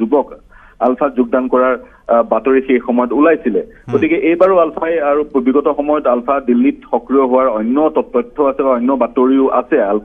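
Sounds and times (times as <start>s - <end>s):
person talking: 3.9s - 4.8s.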